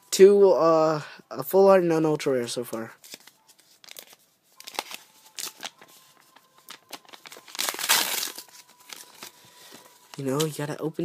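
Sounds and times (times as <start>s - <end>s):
paper crinkling and rustling: 2.7s - 10.6s.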